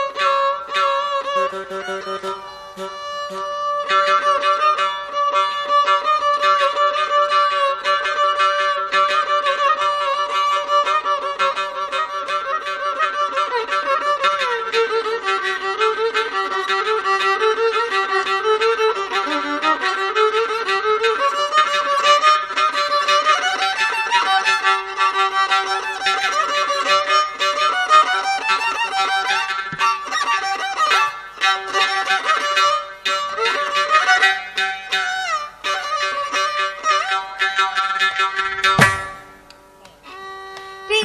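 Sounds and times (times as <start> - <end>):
violin melody with sliding notes: 0.0 - 41.0.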